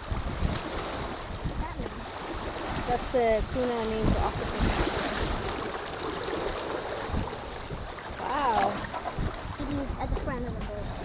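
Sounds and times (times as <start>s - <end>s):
sea water lapping at shore: 0.0s - 11.0s
wind rumble on microphone: 0.0s - 11.0s.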